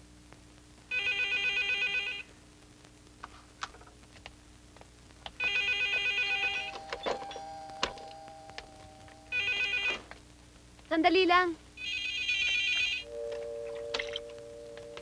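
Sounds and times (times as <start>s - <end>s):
telephone bell ringing: 0.9s - 2.3s, 5.4s - 10.1s, 11.8s - 15.0s
wavering voice-like sound: 6.4s - 9.6s.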